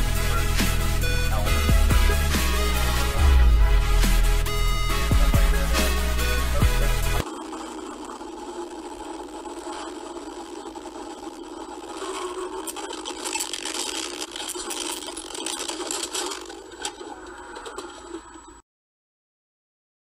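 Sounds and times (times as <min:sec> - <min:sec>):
rattling and scraping: 0:04.0 - 0:18.6.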